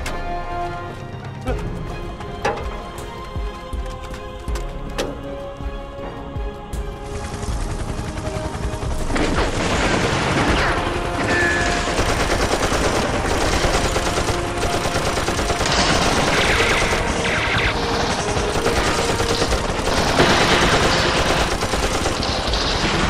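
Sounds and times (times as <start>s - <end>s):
dense rifle gunfire: 11.7s - 23.0s.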